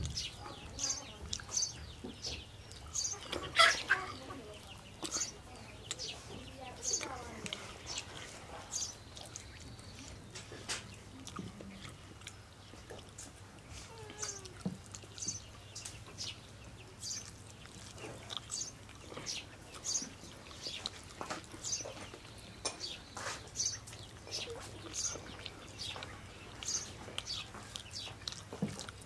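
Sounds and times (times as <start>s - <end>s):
wet chewing and lip smacks: 0.8s - 3.8s, 4.5s - 29.0s.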